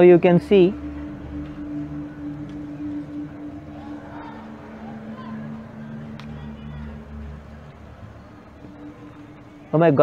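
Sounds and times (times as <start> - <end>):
faint background noise: 0.0 - 10.0
steady low machine hum: 0.0 - 10.0.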